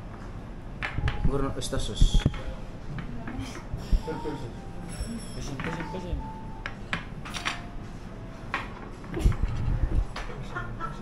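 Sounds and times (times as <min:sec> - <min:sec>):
background chatter: 0:01.4 - 0:06.5
music: 0:03.5 - 0:10.2
ceramic dishes and cutlery clinking: 0:03.7 - 0:06.1.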